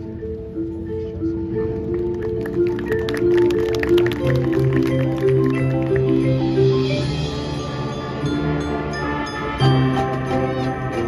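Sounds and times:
mallet percussion strikes: 0.0s - 11.0s
marching band playing: 1.5s - 11.0s.

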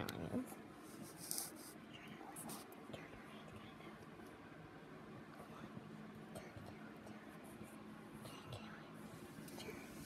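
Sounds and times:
faint whispering: 1.7s - 4.1s, 5.3s - 10.0s.

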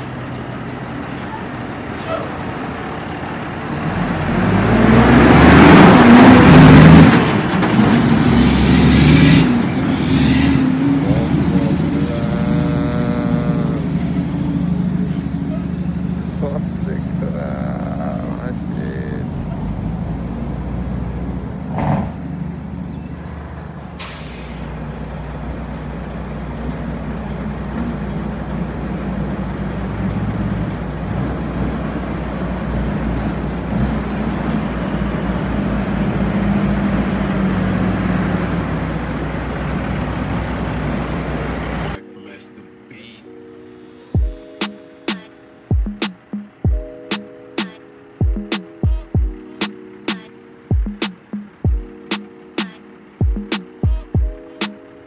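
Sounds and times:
diesel truck engine rumble: 0.0s - 43.4s, 49.7s - 55.0s
air brake hiss: 23.9s - 24.8s.

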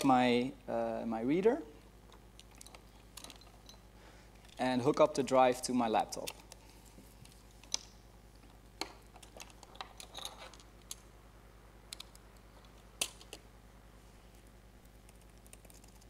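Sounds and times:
faint mains hum: 0.0s - 16.0s
laptop keyboard typing: 14.8s - 16.0s.

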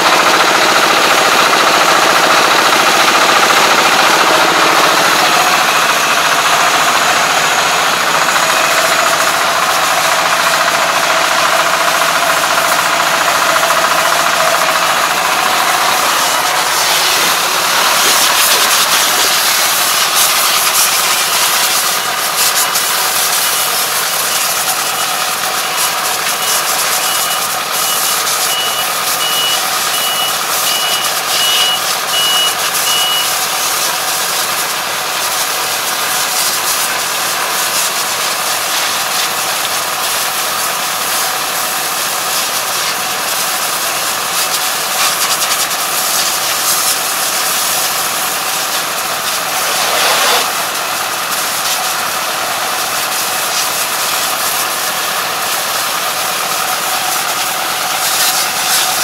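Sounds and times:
combine harvester diesel engine: 0.0s - 59.0s
high-pitched beep: 26.4s - 33.4s.

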